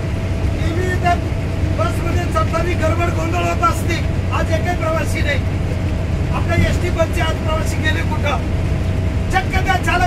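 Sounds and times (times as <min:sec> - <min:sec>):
bus engine and road noise: 0:00.0 - 0:10.0
man speaking: 0:00.6 - 0:05.5, 0:06.3 - 0:08.5, 0:09.3 - 0:10.0.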